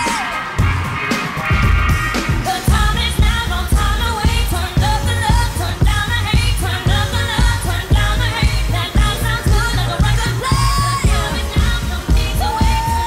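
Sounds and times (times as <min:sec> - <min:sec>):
electronic dance-pop backing track: 0:00.0 - 0:13.0
woman singing: 0:02.4 - 0:13.0.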